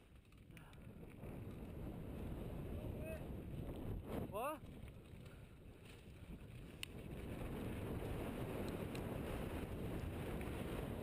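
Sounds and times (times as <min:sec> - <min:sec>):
tyres rolling over loose gravel: 0:00.0 - 0:04.0
wind rumble on microphone: 0:00.0 - 0:11.0.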